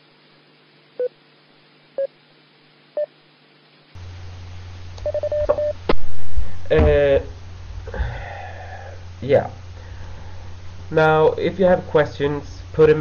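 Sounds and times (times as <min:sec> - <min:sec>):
low hum: 0:02.9 - 0:13.0.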